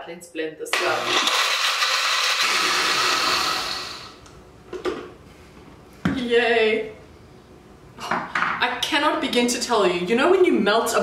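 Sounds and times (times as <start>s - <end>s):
blender running on ice: 0.7s - 4.2s.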